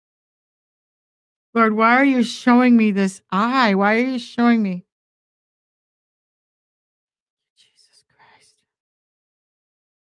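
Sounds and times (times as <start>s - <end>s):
woman whispering: 7.6s - 8.6s.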